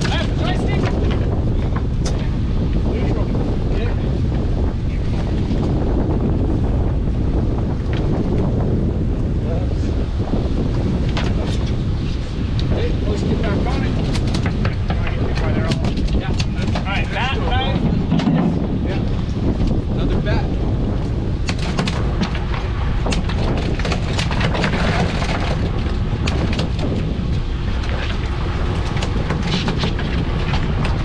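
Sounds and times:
knocks and clatter: 0.0 - 2.3, 11.0 - 11.8, 13.7 - 19.8, 21.4 - 31.0
fishing boat engine rumble: 0.0 - 31.0
wind buffeting microphone: 0.0 - 31.0.

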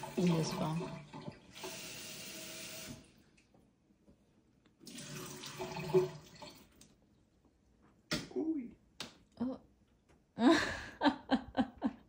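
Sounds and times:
faucet water running into sink: 0.0 - 3.2, 4.8 - 6.8.

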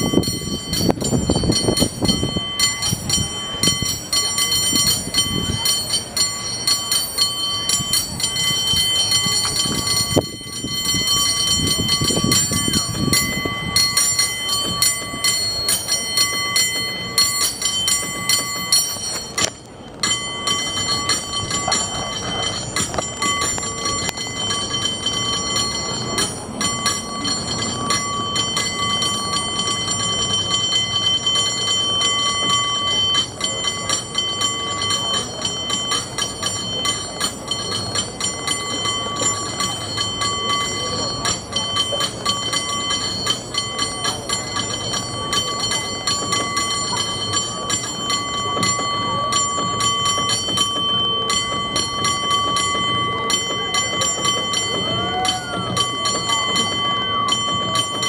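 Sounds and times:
cable car bell ringing: 0.0 - 58.0.

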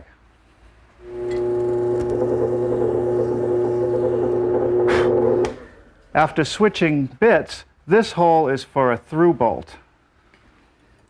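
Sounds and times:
drill press motor running: 1.0 - 5.8.

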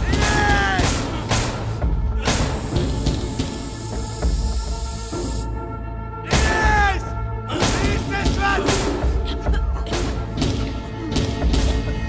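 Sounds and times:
tense background music: 0.0 - 12.0
steady hiss: 2.3 - 5.6.

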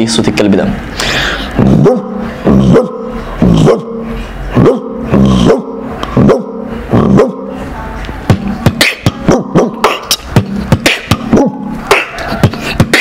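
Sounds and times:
man imitating dog barks: 1.6 - 7.5, 8.7 - 10.2, 10.8 - 13.0.

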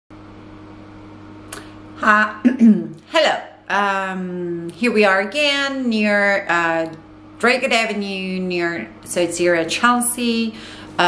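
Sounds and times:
low room hum: 0.2 - 11.0.

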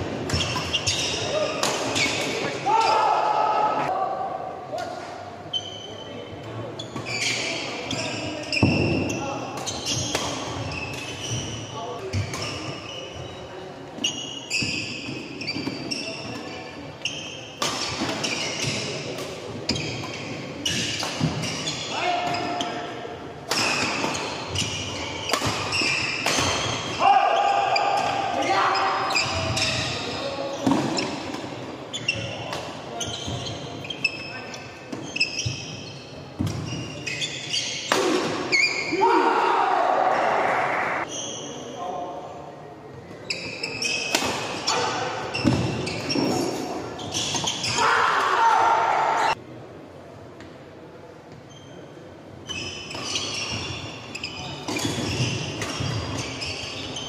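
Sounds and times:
shoes squeaking on court: 0.3 - 2.5, 5.5 - 6.2, 6.8 - 22.9, 23.7 - 27.0, 27.7 - 37.9, 41.0 - 41.8, 43.0 - 47.9, 51.3 - 57.0.

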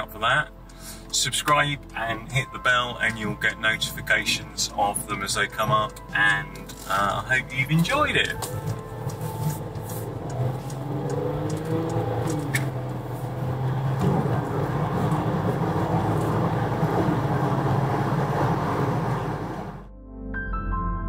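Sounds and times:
car engine hum: 0.0 - 19.9
tyre and road noise: 5.6 - 19.8.

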